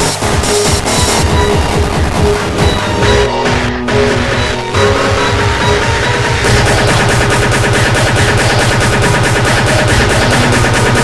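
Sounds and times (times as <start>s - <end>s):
fast distorted kick drum: 0.0s - 11.0s
sustained synth notes: 0.0s - 11.0s.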